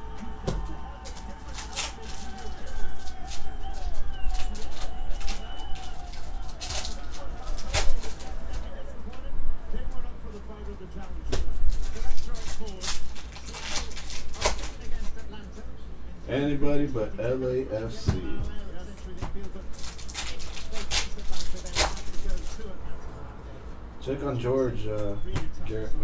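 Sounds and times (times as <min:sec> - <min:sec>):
foil card pack tearing: 0:00.8 - 0:08.8, 0:11.7 - 0:15.1, 0:19.7 - 0:22.7
cards flipping and snapping: 0:11.7 - 0:15.1.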